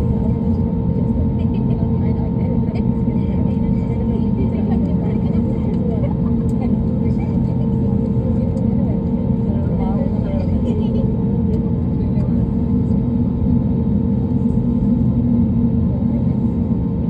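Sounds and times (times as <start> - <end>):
airliner engines rumbling: 0.0 - 17.0.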